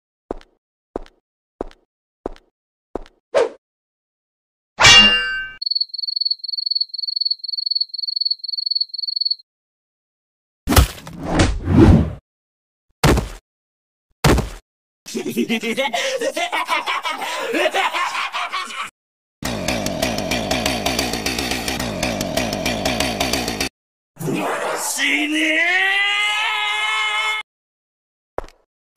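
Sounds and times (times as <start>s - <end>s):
metal axe clang: 4.8s - 5.6s
cricket chirp sound effect: 5.6s - 9.4s
chainsaw running: 19.4s - 23.7s.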